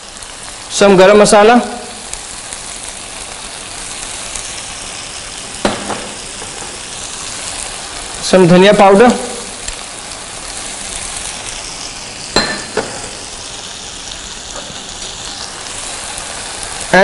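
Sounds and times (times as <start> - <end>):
food sizzling in a pan: 0.0 - 17.0
spoon clinking against a bowl: 12.4 - 12.9.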